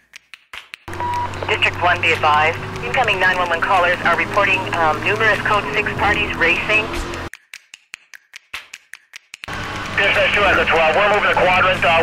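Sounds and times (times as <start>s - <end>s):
loud intro music: 9.5s - 12.0s.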